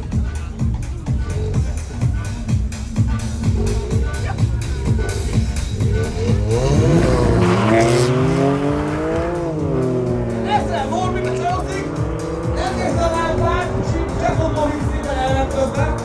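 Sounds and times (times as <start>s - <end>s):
music: 0.0s - 16.0s
cars accelerating hard: 3.4s - 16.0s.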